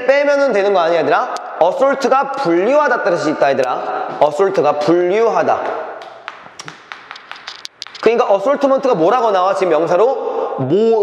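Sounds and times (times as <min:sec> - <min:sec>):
chalk tapping on chalkboard: 0:06.0 - 0:08.2.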